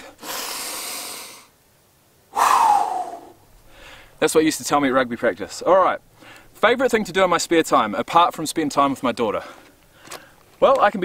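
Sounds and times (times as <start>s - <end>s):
man breathing in through nose: 0.0s - 1.5s, 2.3s - 4.2s
man breathing out through mouth: 0.0s - 1.5s, 2.3s - 4.2s.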